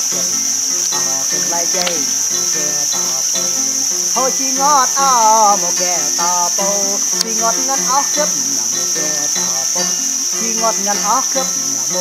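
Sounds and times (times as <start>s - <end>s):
insects droning: 0.0s - 12.0s
song playing softly: 0.0s - 12.0s.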